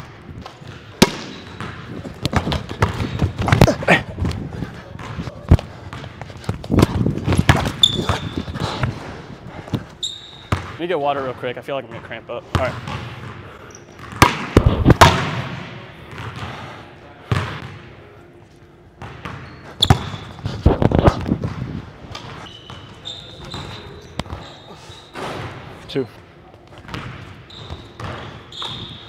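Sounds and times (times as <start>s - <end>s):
basketball bouncing on hardwood floor: 10.5s - 10.7s.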